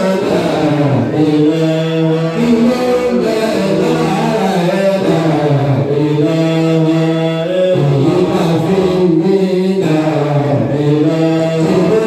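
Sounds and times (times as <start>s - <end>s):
man chanting prayer into microphone: 0.0s - 12.0s.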